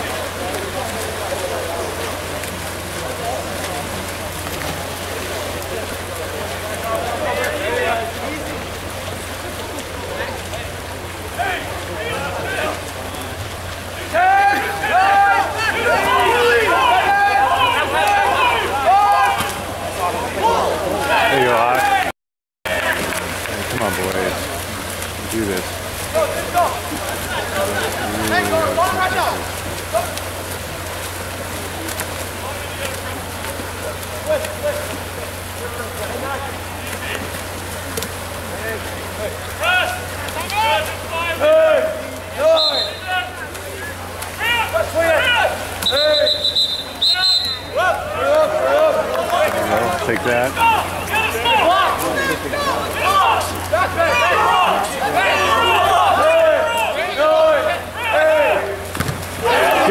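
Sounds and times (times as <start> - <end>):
people shouting: 14.0 - 22.1, 26.1 - 30.4, 39.6 - 43.5, 44.3 - 59.9
whistle blasts: 42.5 - 43.1, 45.8 - 47.8.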